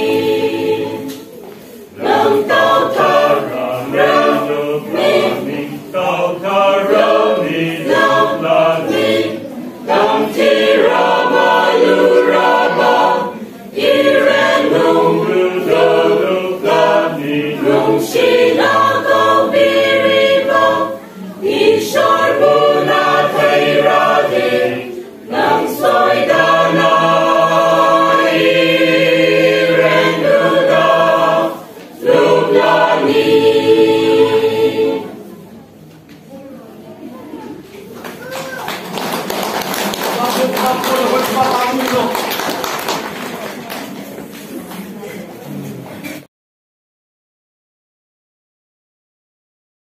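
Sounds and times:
choir singing a hymn: 0.0 - 35.4.

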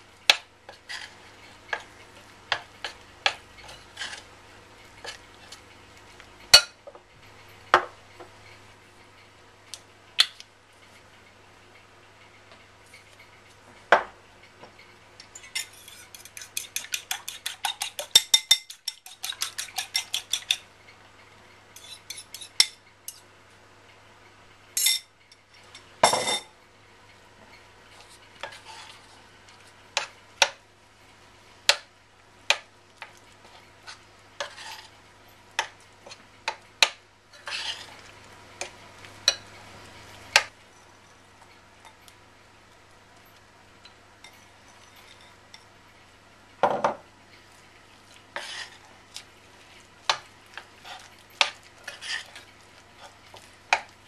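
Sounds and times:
fork clinking on ceramic bowl: 15.4 - 20.6.

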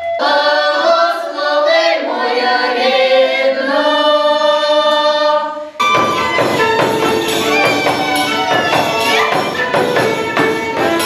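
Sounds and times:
women singing a cappella: 0.0 - 5.8.

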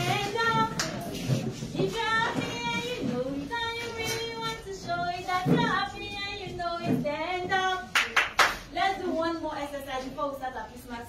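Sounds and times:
hand claps: 0.7 - 1.1, 7.9 - 8.6.

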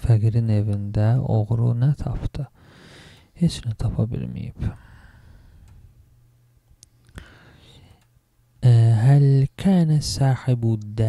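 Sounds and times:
man reading aloud: 0.0 - 2.6, 3.4 - 4.8, 8.6 - 11.0
soft breathy sound: 4.6 - 6.0, 6.9 - 8.1.

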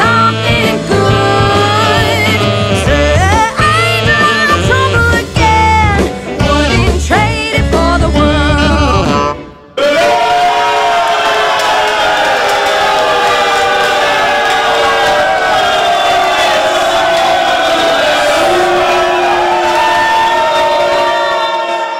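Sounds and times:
live band playing: 0.0 - 9.9.

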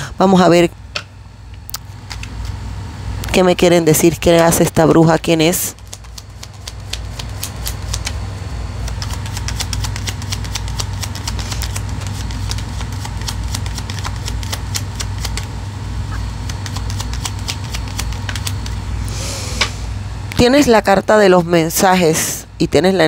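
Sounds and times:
steady low hum: 0.0 - 23.0
cards being shuffled: 1.8 - 2.6, 5.6 - 8.2, 8.8 - 15.5, 16.4 - 18.8.

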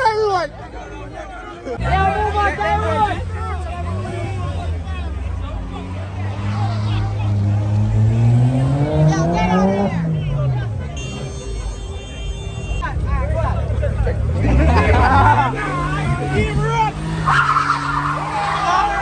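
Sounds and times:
crowd shouting: 0.0 - 7.9, 14.4 - 19.0
tyres skidding: 0.0 - 19.0
car engines revving hard: 1.7 - 11.0, 12.9 - 19.0.

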